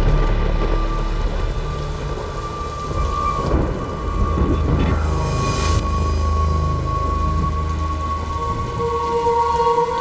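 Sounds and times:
low rumble of thunder: 0:00.0 - 0:05.6
steady rain falling: 0:00.0 - 0:10.0.

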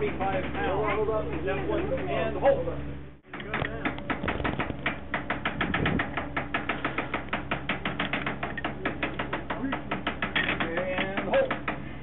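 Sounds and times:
rapid mechanical clicking: 0:03.2 - 0:12.0.

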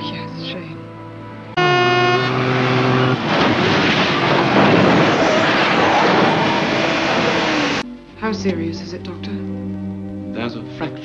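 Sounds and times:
vehicle horn blaring: 0:01.6 - 0:03.8
car crash: 0:01.6 - 0:07.8
music score: 0:05.9 - 0:11.0.

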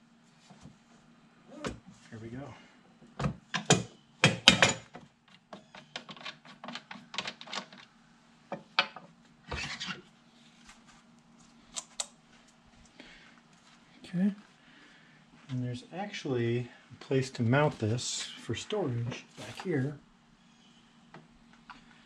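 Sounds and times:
faint steady hum: 0:00.0 - 0:22.0
knocks and clicks of parts handled: 0:03.0 - 0:07.9.

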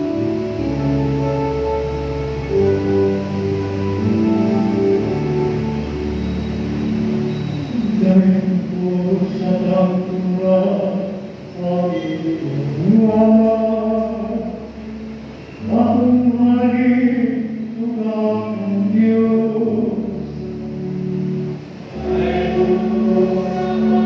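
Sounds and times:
church choir singing a hymn: 0:21.2 - 0:24.0.

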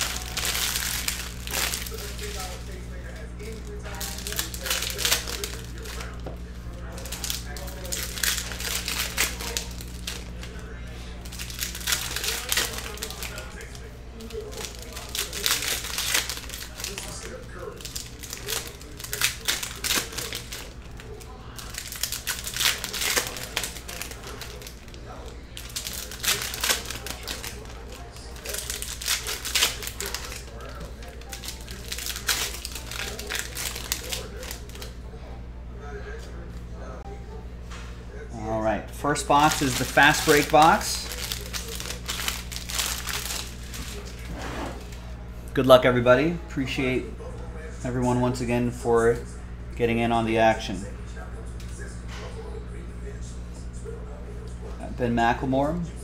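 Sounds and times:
foil wrappers crinkling and tearing: 0:00.0 - 0:35.0, 0:38.5 - 0:45.7
steady low hum: 0:00.0 - 0:56.0.

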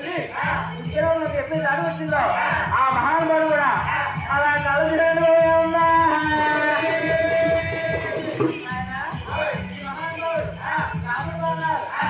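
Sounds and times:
man chanting a folk song: 0:00.0 - 0:12.0.

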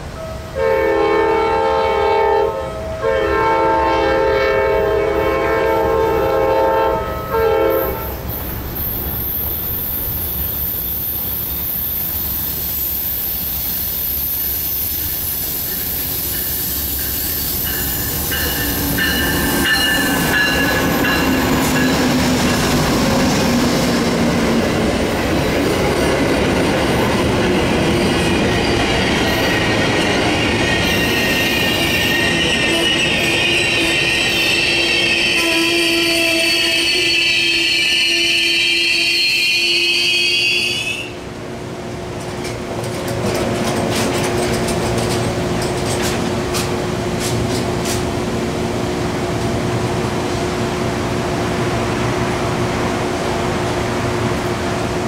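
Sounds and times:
train rumbling past: 0:00.0 - 0:55.0
train horn blasts: 0:00.1 - 0:08.3, 0:30.8 - 0:41.4
train wheels squealing: 0:07.7 - 0:24.0, 0:24.7 - 0:41.0.

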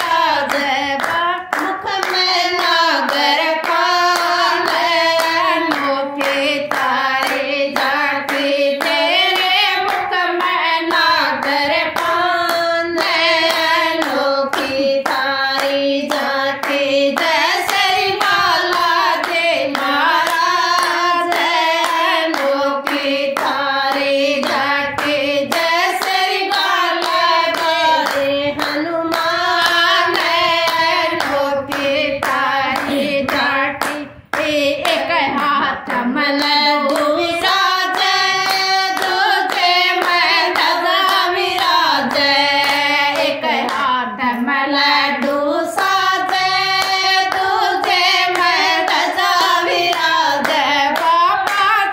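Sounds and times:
rhythmic hand-clapping: 0:00.0 - 0:51.9
women singing in unison: 0:00.0 - 0:51.9.

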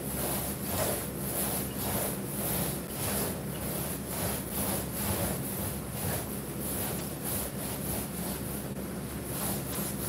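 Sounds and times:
paint roller rubbing on sheet: 0:00.0 - 0:10.0.

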